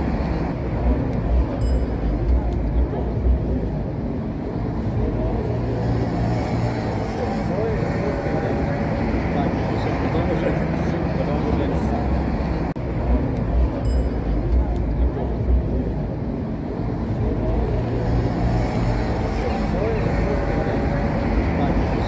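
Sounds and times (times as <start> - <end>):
cars driving past: 0.0 - 22.0.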